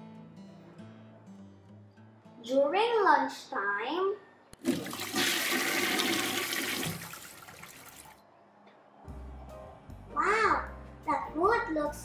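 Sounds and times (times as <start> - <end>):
toilet flushing: 4.6 - 8.2.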